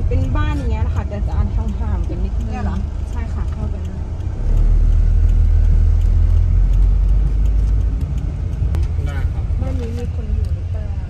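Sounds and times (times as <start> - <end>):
car interior road rumble: 0.0 - 11.0.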